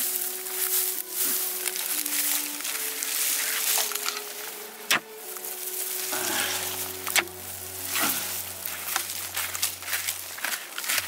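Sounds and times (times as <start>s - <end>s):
dirt and stones crumbling: 0.0s - 11.0s
soft background music: 0.0s - 11.0s.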